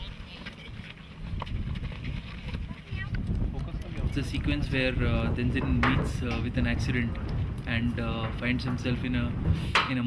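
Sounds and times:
scuffling footsteps on dusty ground: 0.0 - 4.6
low rumble: 1.3 - 9.8.

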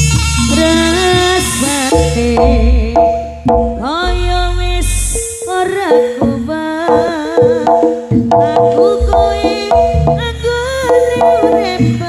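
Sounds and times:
drum strokes: 0.0 - 4.4, 5.2 - 12.0
high wavering melody: 0.0 - 12.0
steady held tones: 0.0 - 12.0.

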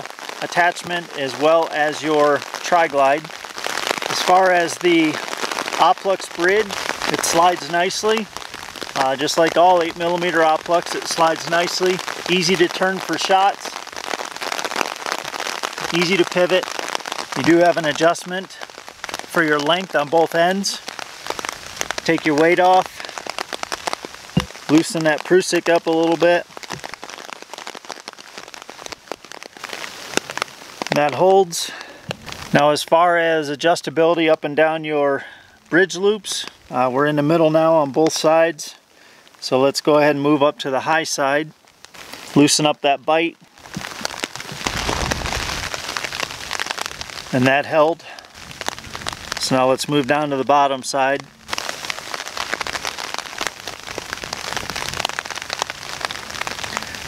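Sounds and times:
raindrop ticks: 0.0 - 39.5, 40.2 - 57.0
rain hissing: 0.0 - 57.0.

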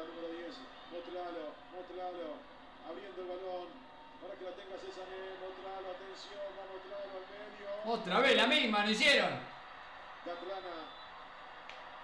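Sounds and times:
man commentating over a speaker: 0.0 - 9.5, 10.2 - 11.0.

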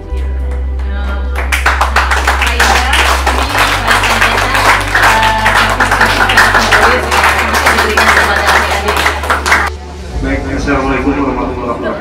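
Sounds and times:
background music: 0.0 - 12.0
applause: 0.5 - 9.7.

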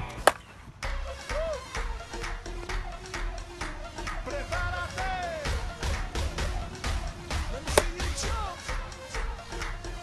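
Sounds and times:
background music: 0.0 - 10.0
bat striking ball crack: 0.1 - 0.5, 7.7 - 8.0.

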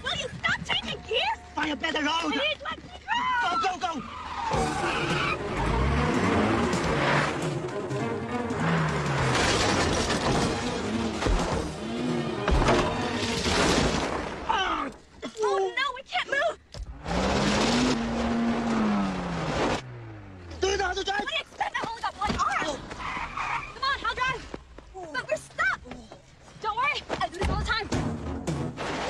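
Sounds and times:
tyres skidding on gravel: 0.0 - 14.8, 16.9 - 27.6
car engine revving hard: 4.6 - 13.3, 16.9 - 20.5.

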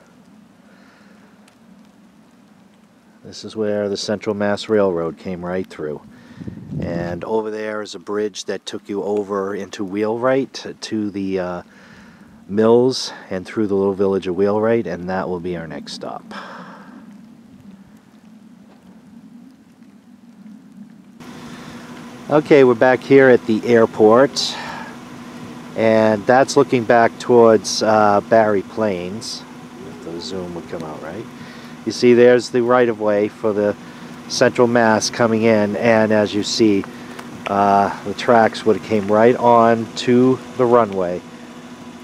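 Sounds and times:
faint ticks: 0.0 - 3.2, 16.2 - 22.3, 36.7 - 39.3
faint outdoor background hiss: 0.0 - 42.0
steady low hum: 0.0 - 42.0.

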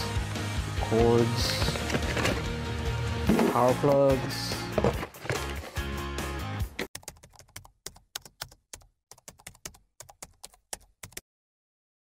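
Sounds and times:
background music: 0.0 - 6.9
keyboard typing clicks: 6.9 - 11.2.

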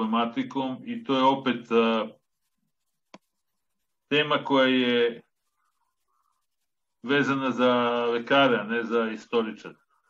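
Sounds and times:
man speaking: 0.0 - 2.3, 4.1 - 5.4, 7.0 - 9.9.

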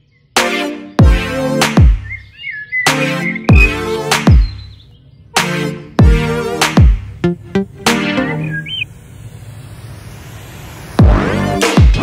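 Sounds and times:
steady low hum: 3.5 - 12.0
filtered white-noise sweep: 5.3 - 12.0.

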